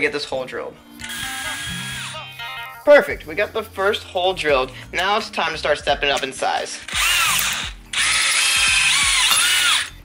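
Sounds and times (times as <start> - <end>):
background music: 0.0 - 10.0
cordless drill whining: 1.0 - 2.2, 6.9 - 10.0
drill bit grinding metal: 1.0 - 2.2, 6.9 - 10.0.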